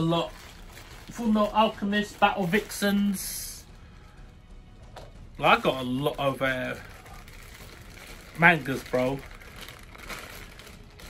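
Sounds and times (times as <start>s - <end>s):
plastic bag crinkling: 0.0s - 3.4s, 5.4s - 11.0s.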